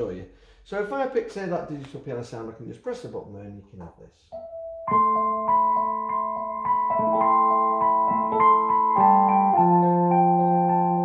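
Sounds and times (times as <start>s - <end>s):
electric piano chords: 4.3s - 11.0s.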